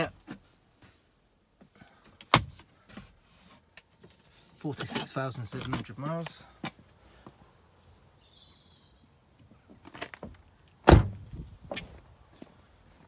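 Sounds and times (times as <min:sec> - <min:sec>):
car door shutting thud: 0:10.8 - 0:11.9.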